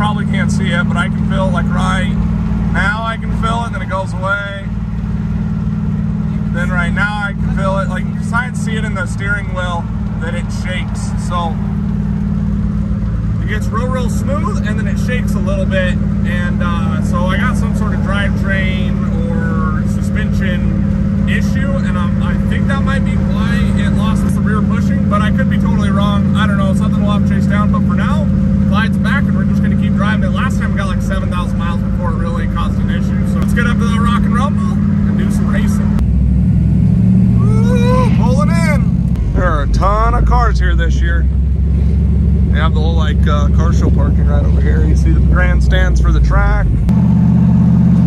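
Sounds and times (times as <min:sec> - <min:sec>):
man talking: 0:00.0 - 0:04.7, 0:06.4 - 0:11.6, 0:13.4 - 0:36.0, 0:37.4 - 0:41.3, 0:42.5 - 0:46.8
car engine and road drone: 0:00.0 - 0:48.0
low rumble: 0:00.0 - 0:48.0.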